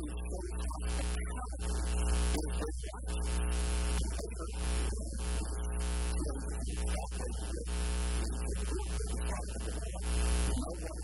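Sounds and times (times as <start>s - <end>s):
electrical mains hum: 0.0s - 11.0s
man's voice: 0.0s - 11.0s.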